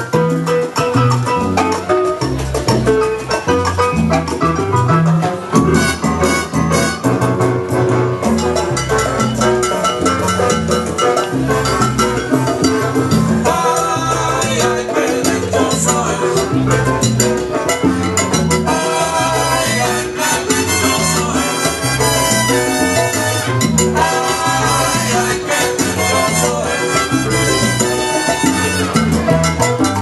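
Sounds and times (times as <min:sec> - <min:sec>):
salsa music from a record: 0:00.0 - 0:30.0.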